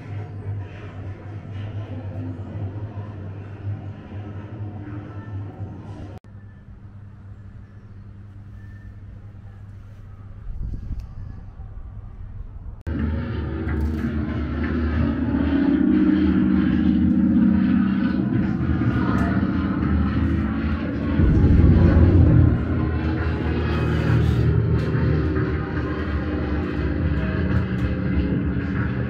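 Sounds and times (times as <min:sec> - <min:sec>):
low battlefield rumble: 0:00.0 - 0:29.0.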